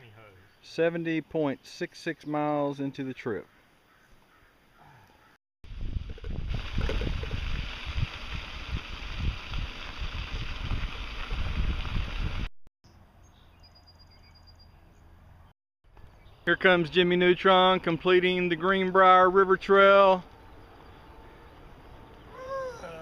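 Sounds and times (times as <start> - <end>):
quiet outdoor background: 0.0 - 12.1, 12.8 - 23.0
wind buffeting microphone: 5.7 - 12.5.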